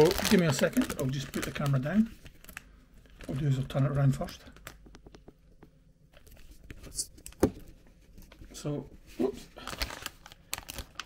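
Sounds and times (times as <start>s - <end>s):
plastic bag crinkling: 0.0s - 4.9s, 9.6s - 11.0s.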